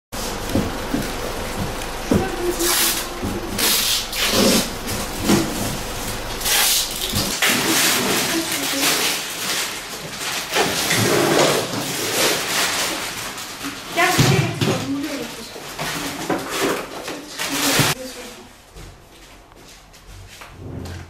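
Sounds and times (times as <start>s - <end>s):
plastic bags crinkling: 0.3s - 18.3s
young children's voices: 2.1s - 3.6s, 8.0s - 9.2s, 13.9s - 18.5s.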